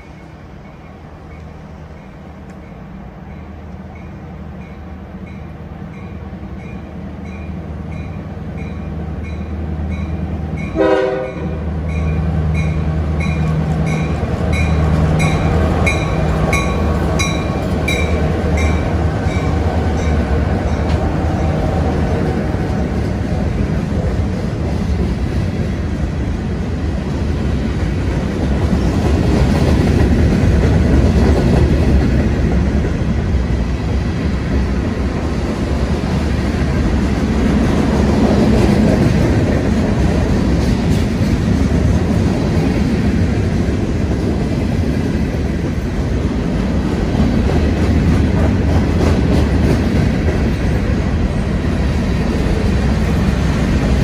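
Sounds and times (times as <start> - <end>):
train bell ringing: 0.0 - 21.6
diesel locomotives droning: 0.0 - 54.0
train horn blast: 10.7 - 11.8
steel wheels clattering on rails: 46.9 - 54.0.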